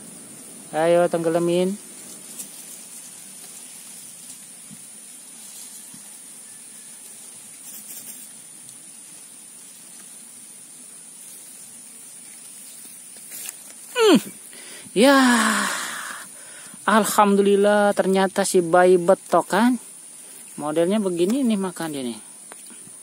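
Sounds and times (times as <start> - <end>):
faint steady hiss: 0.0 - 23.0.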